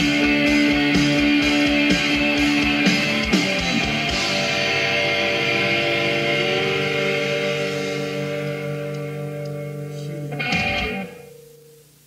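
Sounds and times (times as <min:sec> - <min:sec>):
rock band final chord: 0:00.0 - 0:12.0.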